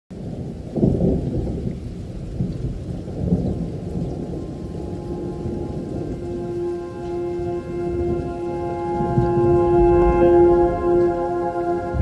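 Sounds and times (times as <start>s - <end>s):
thunder clap and rumbling: 0.1s - 12.0s
music: 4.5s - 12.0s.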